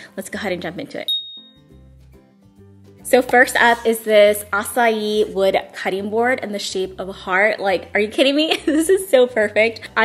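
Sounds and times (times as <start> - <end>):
quiet background music: 0.0 - 10.0
bright ding: 1.1 - 1.8.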